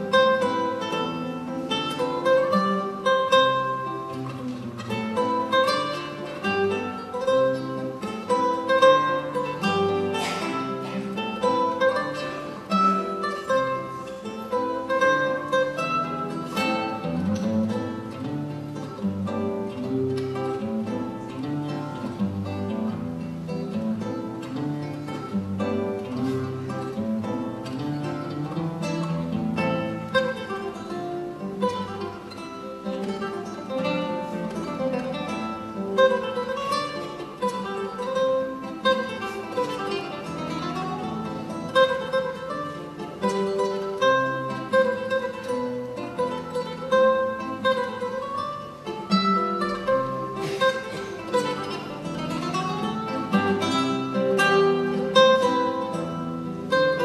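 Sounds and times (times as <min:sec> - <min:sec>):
fingerstyle classical guitar waltz: 0:00.0 - 0:57.0.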